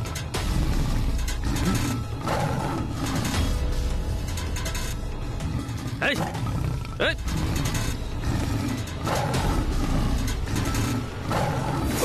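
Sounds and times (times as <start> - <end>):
tiger growling: 0.0 - 12.0.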